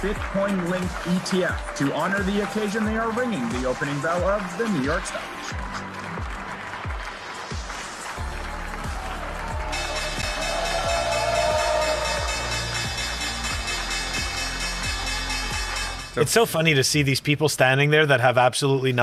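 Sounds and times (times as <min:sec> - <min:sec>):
applause: 0:00.0 - 0:16.2
upbeat music: 0:00.0 - 0:17.1
bell ringing continuously: 0:09.7 - 0:16.4.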